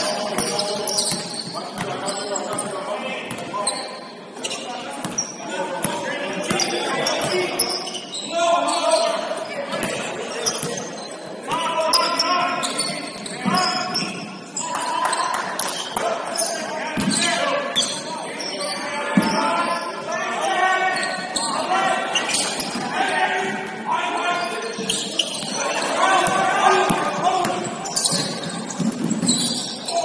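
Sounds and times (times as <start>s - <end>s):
players calling out: 0.0s - 30.0s.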